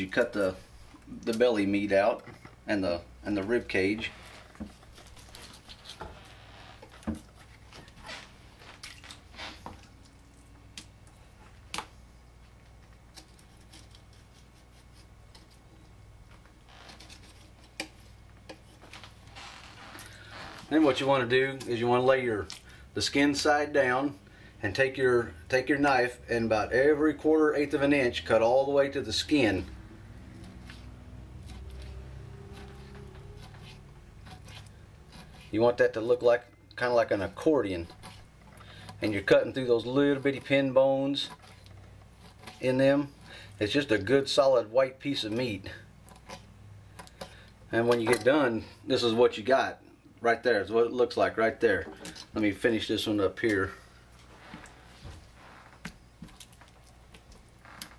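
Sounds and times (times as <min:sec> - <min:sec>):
knife scraping on cutting board: 0:30.3 - 0:35.5.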